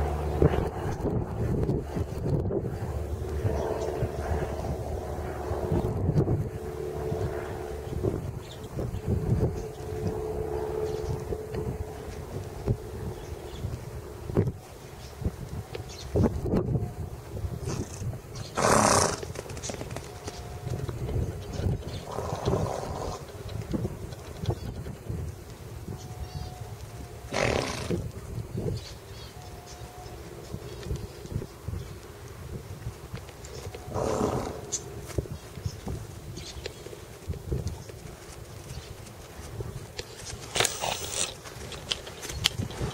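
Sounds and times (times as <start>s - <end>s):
steady hum: 0.0s - 37.5s
wind buffeting microphone: 0.0s - 42.9s
horse snorting: 17.6s - 19.4s, 22.0s - 23.3s, 27.3s - 28.0s, 33.9s - 34.8s.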